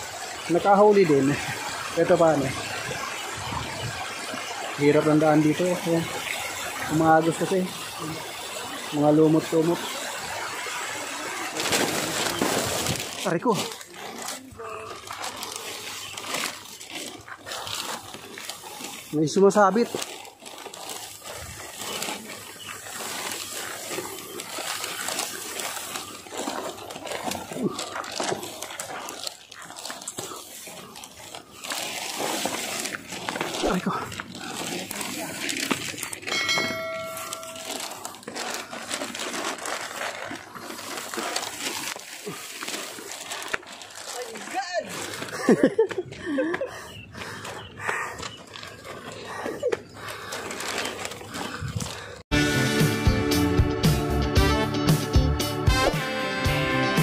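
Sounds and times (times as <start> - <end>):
soft crackles: 0.0 - 52.2
tall grass rustling against body: 0.0 - 52.2
faint voices: 10.8 - 17.3.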